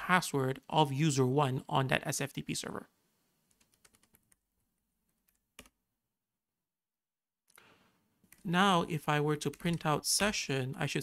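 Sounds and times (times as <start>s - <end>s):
computer keyboard typing: 3.5s - 4.4s, 5.2s - 5.8s, 9.4s - 10.4s.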